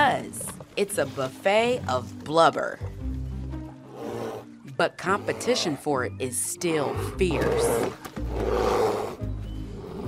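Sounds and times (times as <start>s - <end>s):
background music: 0.0s - 10.0s
bears roaring and growling: 3.6s - 10.0s.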